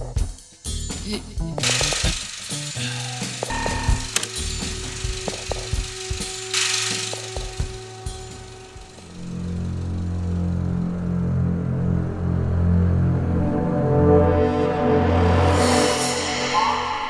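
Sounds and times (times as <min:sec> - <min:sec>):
low droning music: 0:00.6 - 0:17.0
sharp clicks and knocks: 0:03.2 - 0:09.1.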